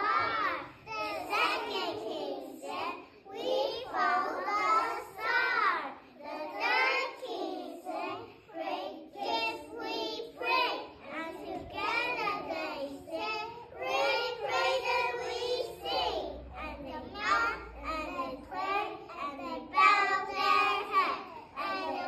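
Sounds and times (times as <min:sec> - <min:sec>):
young children singing: 0:00.0 - 0:22.0.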